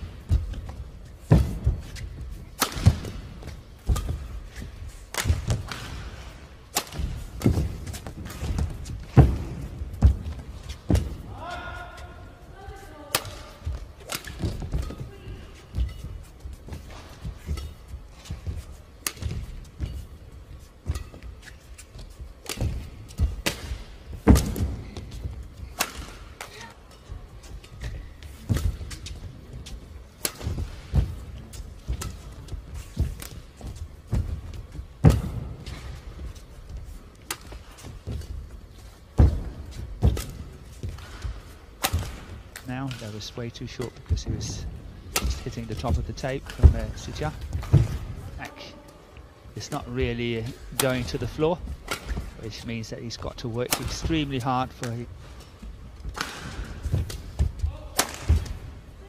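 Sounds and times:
rackets striking shuttlecock: 1.3 - 10.2, 22.4 - 33.5, 45.0 - 48.1, 49.7 - 52.4, 53.6 - 58.9.

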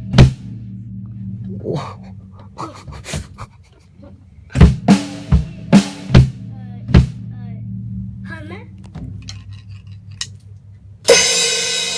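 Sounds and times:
low steady hum: 0.0 - 11.9
drumsticks clicking and tapping: 8.8 - 10.7.

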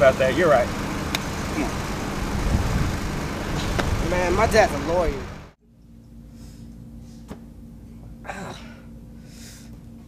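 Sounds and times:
traffic rumble: 0.0 - 5.6.

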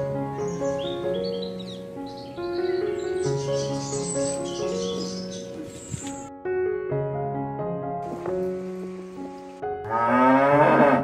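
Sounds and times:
piano background music: 0.0 - 11.0
cow mooing: 9.8 - 11.0.

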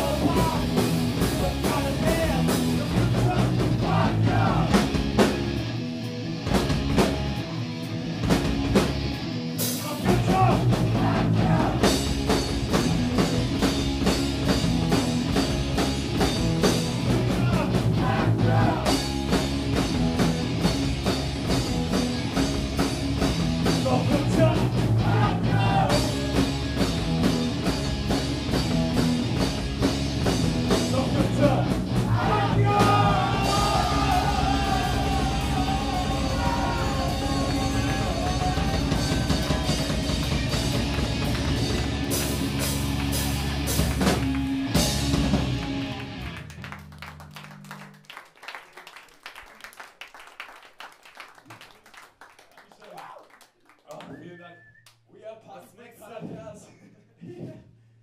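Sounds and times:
punk rock band playing live: 0.0 - 46.8
audience clapping: 34.2 - 55.0.

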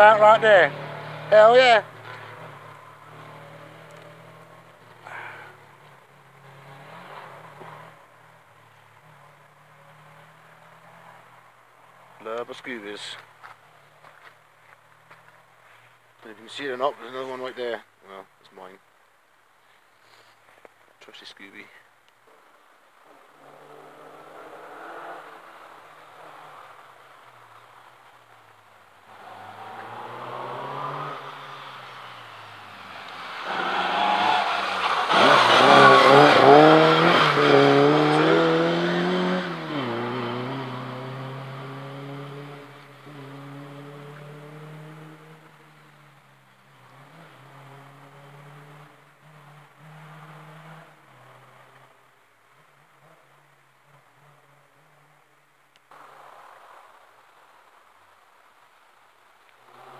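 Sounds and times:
rally car engine passing: 0.0 - 13.2, 23.3 - 27.8, 29.0 - 52.1.

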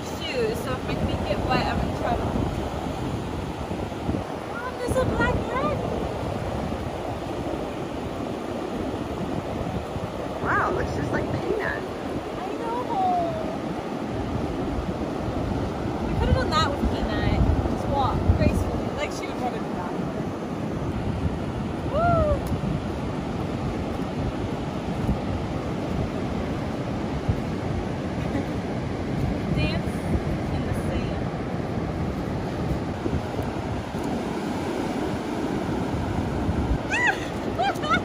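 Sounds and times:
surf breaking on beach: 0.0 - 38.0
wind buffeting microphone: 0.0 - 38.0.

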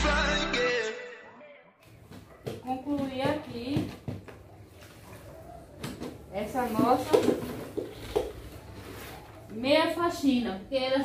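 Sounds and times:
mop knocking in plastic bucket: 2.1 - 4.5, 5.8 - 8.4.

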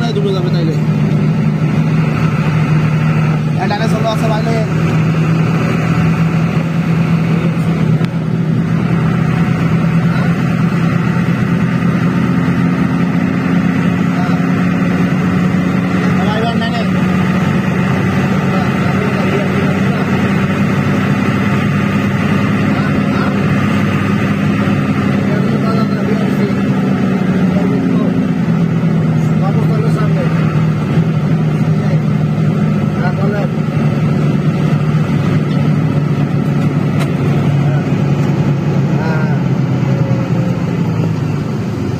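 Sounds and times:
coach engine droning: 0.0 - 41.9
tyre and road noise: 0.0 - 41.9.

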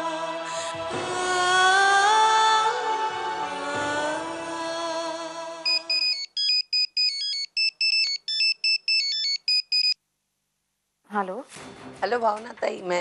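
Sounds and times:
phone ringtone beeps: 5.7 - 10.0.

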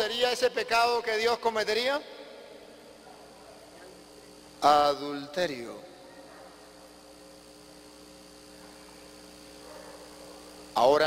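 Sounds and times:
electrical hum with light hiss: 0.0 - 11.0.

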